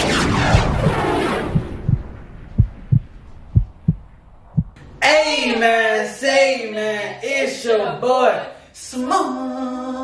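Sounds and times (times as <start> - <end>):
heartbeat thumps: 0.5 - 4.8.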